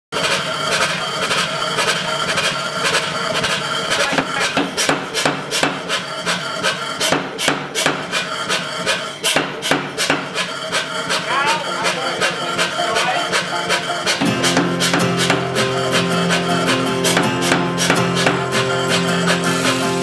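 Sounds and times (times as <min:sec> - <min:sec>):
power hammer striking steel: 0:00.2 - 0:20.0
background music: 0:11.1 - 0:20.0.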